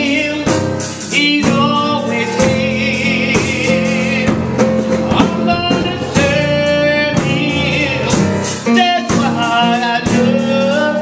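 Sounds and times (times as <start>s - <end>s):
instrumental accompaniment with beat: 0.0s - 11.0s.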